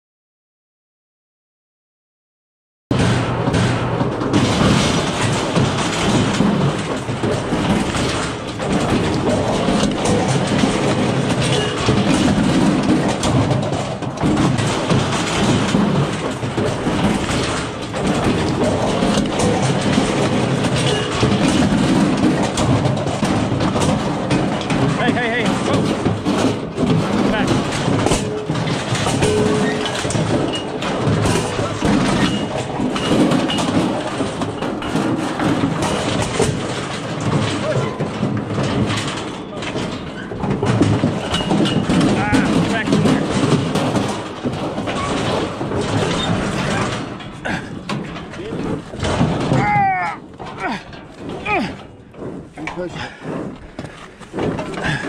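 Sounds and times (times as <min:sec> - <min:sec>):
steel chute rattling and clanking: 0:02.9 - 0:55.0.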